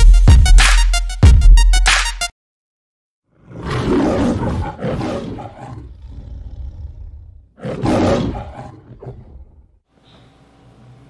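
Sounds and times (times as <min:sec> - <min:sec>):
lion roaring: 0:03.3 - 0:09.8.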